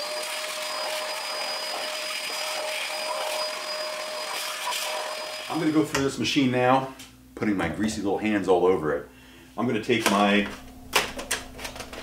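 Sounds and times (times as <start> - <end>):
shop vac running: 0.0 - 10.8.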